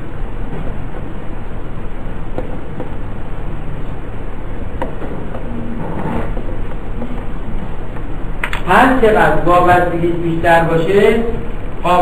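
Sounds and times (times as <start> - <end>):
low rumbling noise with hiss: 0.0 - 12.0.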